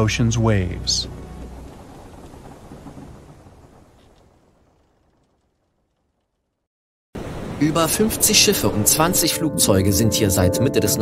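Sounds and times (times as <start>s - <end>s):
noisy rumble: 0.0s - 5.3s.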